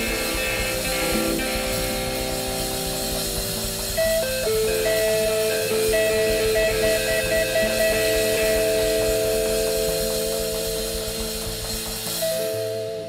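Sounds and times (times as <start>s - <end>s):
bass guitar: 0.0s - 13.0s
drums: 0.0s - 13.0s
electric guitar long notes: 0.0s - 13.0s.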